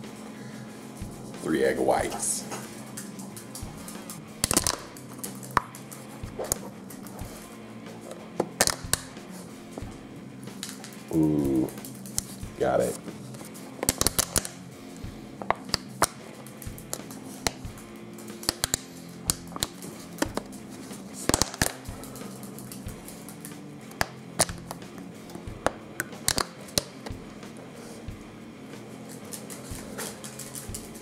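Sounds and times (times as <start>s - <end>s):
faint music: 0.0s - 31.0s.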